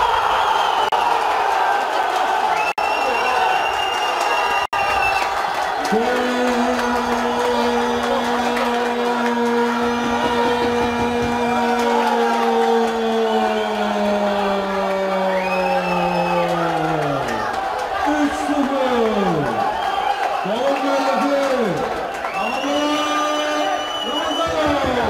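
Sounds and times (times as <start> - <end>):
crowd cheering: 0.0 - 25.0.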